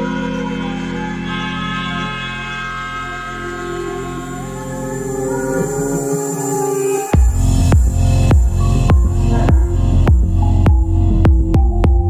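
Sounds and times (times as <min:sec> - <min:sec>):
techno kick drum: 0:07.2 - 0:12.0
throbbing deep bass: 0:07.2 - 0:12.0.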